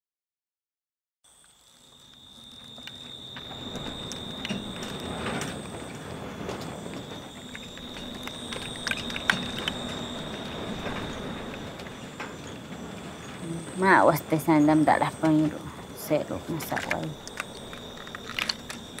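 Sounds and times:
crackles and clicks: 1.3s - 19.0s
low hum: 2.0s - 19.0s
high-pitched whine: 2.1s - 19.0s.

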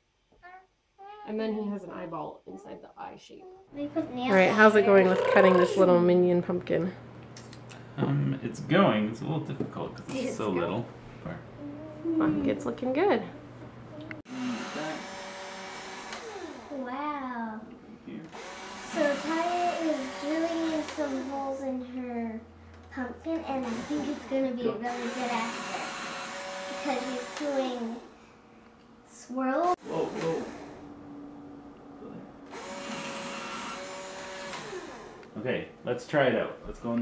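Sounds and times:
cordless drill whining: 14.3s - 16.8s, 18.3s - 21.2s, 29.9s - 30.8s, 32.5s - 35.3s
drill bit boring through pumpkin: 14.3s - 16.8s, 18.3s - 21.3s, 24.9s - 27.6s, 29.8s - 30.8s, 32.5s - 35.3s.

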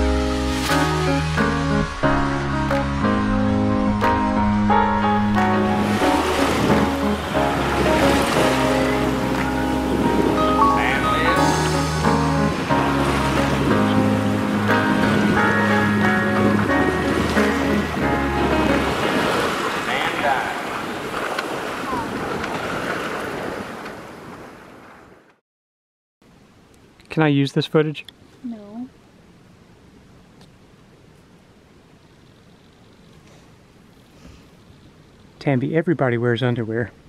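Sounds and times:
background music: 0.0s - 19.4s
waves splashing against hull: 0.0s - 25.3s
wind and water rushing: 0.0s - 25.3s.

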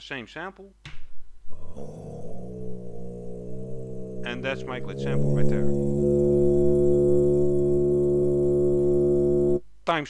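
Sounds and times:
deep chanting drone: 1.5s - 9.7s.

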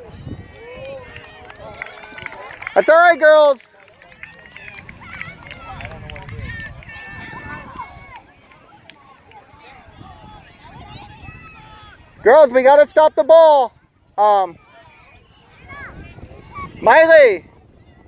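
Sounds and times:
wind rumble on microphone: 0.0s - 2.7s, 4.1s - 8.6s, 9.5s - 12.6s, 13.8s - 18.0s
distant shouts and calls: 0.0s - 18.0s.

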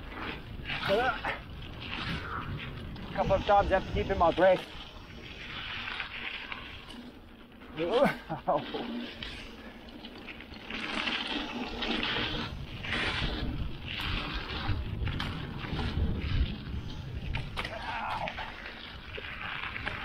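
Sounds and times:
bike tyres rushing on dirt trail: 0.0s - 20.0s
person laughing: 7.9s - 8.9s.

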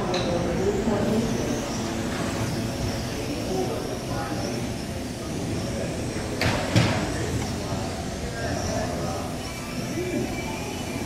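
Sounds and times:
electric motors whining: 0.0s - 6.4s, 7.1s - 11.0s.

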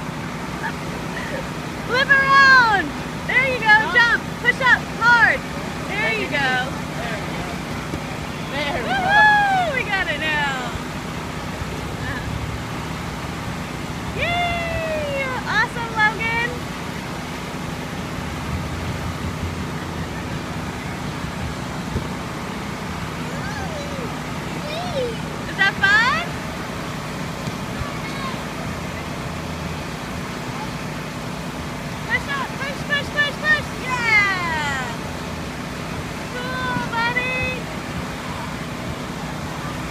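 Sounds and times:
low motor hum: 0.0s - 39.9s.

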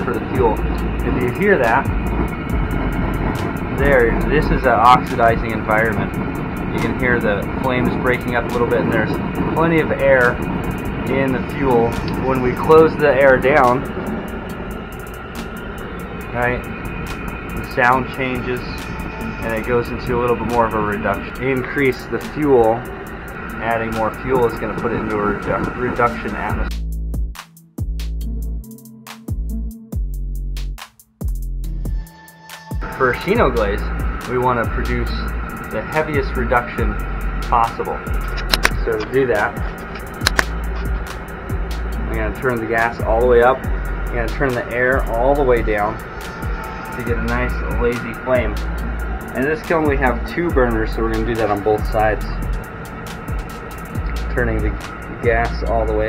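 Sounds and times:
sharp crackles: 0.0s - 26.6s, 33.0s - 56.0s
faint hum: 0.0s - 26.7s, 32.8s - 56.0s
gas burner roaring: 0.0s - 28.6s, 31.6s - 56.0s.

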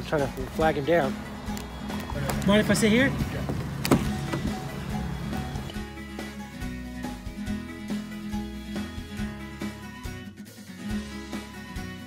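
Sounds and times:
background music with held notes: 0.0s - 12.0s
car door click: 3.4s - 4.6s.

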